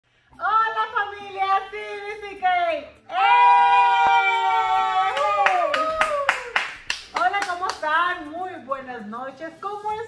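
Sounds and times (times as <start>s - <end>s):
voices holding cheering note: 3.1s - 6.4s
hand claps: 3.9s - 7.9s.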